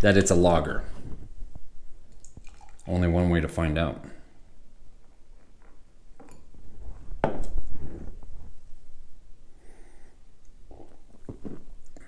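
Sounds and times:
soft handling noise: 5.0s - 8.9s.

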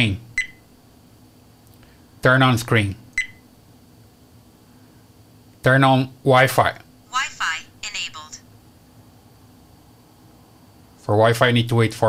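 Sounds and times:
synthesized voice prompt: 7.2s - 8.4s.

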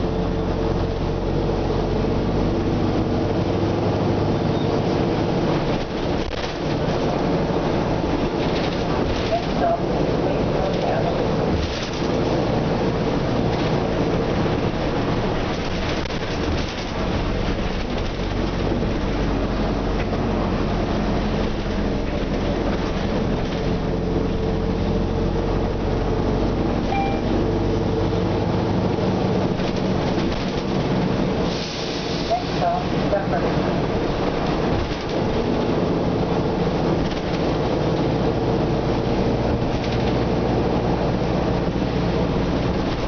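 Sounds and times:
bus cabin noise: 0.0s - 43.0s
bus diesel engine hum: 0.0s - 43.0s.

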